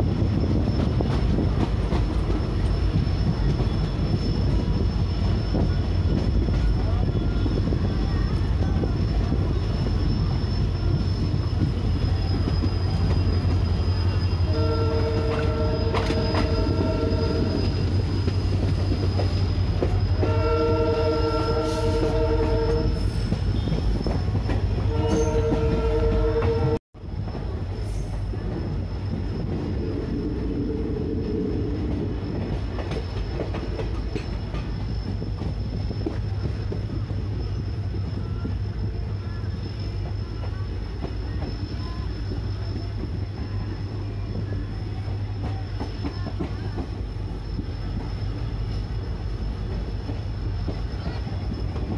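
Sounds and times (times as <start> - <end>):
train wheels rumbling on rail: 0.0 - 51.9
locomotive horn blasts: 14.5 - 17.6, 20.2 - 23.0, 24.9 - 26.8
faint distant horn: 14.5 - 17.7.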